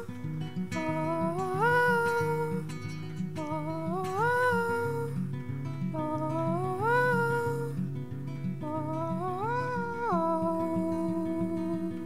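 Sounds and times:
acoustic guitar picking: 0.0 - 12.0
person singing wordless ooh: 0.7 - 7.9, 8.6 - 12.0.

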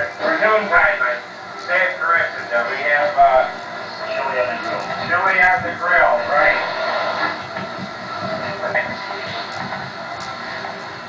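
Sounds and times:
indistinct men talking: 0.0 - 9.8.

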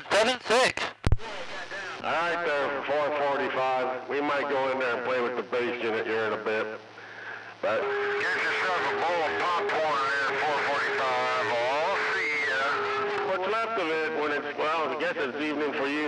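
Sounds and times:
man talking over cb radio: 0.0 - 6.8, 7.6 - 16.0.

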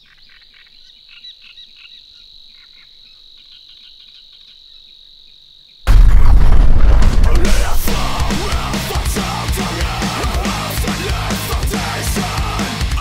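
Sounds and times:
metalcore band playing: 5.9 - 13.0.

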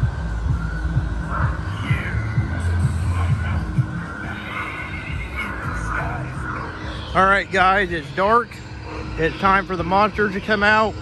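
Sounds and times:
music from outdoor speakers: 0.0 - 11.0
wavering high cry: 0.9 - 9.8.

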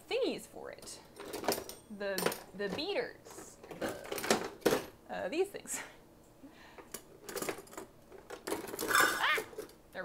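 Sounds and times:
metal utensils clinking in drawer: 7.2 - 9.7.

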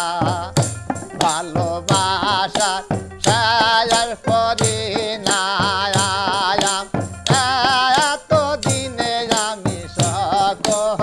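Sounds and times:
hand drum strokes: 0.0 - 11.0
jingling frame drum: 0.0 - 11.0
man singing: 0.0 - 11.0.

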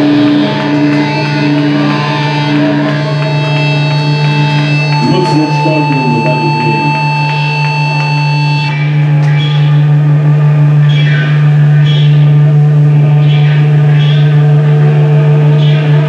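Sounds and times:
high feedback tone: 5.0 - 8.7.

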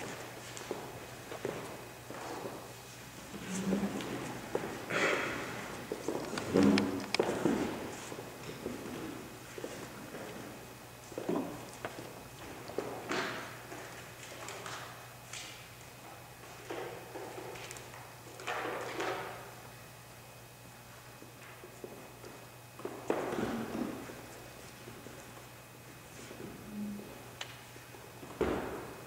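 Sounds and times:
steady low hum: 0.0 - 18.5, 19.3 - 29.0
handling noises: 5.7 - 8.7.

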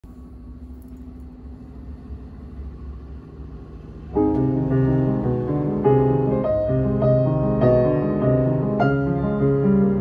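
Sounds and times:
faint hum: 0.0 - 10.0
low room rumble: 0.0 - 10.0.

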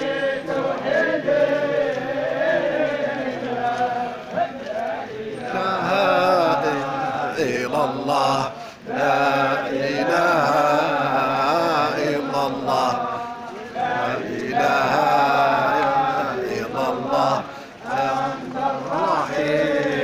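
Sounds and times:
crowd of men chanting in unison: 0.0 - 20.0.

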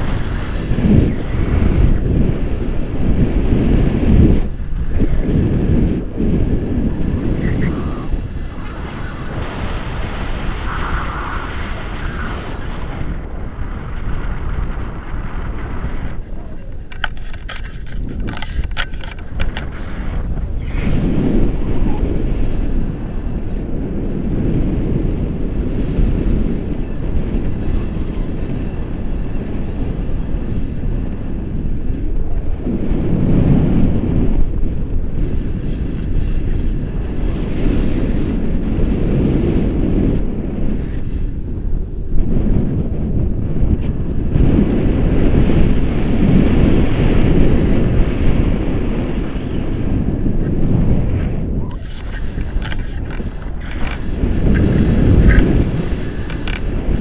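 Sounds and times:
wind rumbling on microphone: 0.0 - 57.0.

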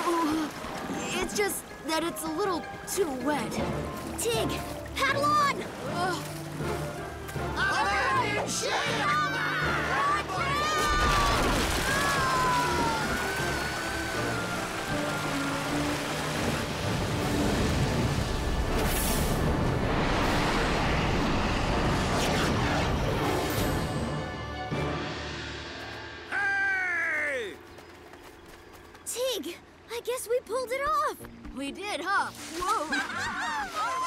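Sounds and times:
rushing water: 0.0 - 22.1, 32.3 - 34.0
dramatic orchestral music: 0.0 - 26.8.

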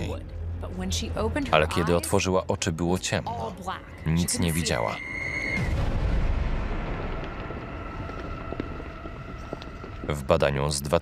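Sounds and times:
traffic rumble: 6.0 - 11.0.

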